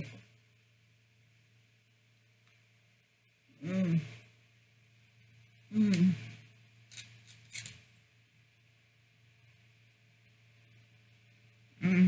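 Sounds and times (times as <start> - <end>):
faint low hum: 0.0 - 12.0
woman humming: 3.5 - 4.2, 5.7 - 6.4, 11.8 - 12.0.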